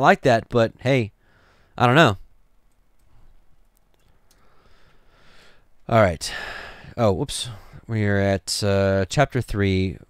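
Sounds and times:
person speaking: 0:01.8 - 0:02.2, 0:05.8 - 0:10.0.

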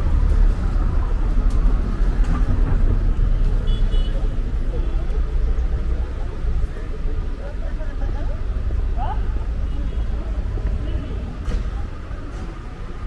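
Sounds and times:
low traffic rumble: 0:00.0 - 0:13.0
voices of passers-by: 0:00.0 - 0:13.0.

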